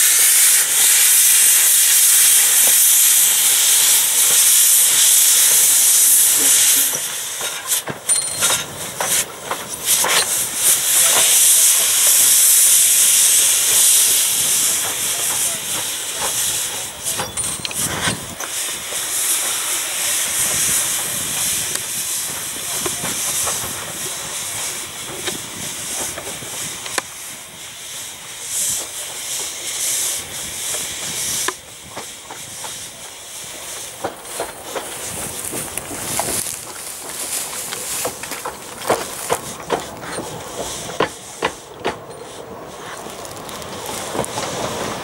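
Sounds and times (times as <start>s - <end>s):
steam locomotive hissing: 0.0s - 45.0s.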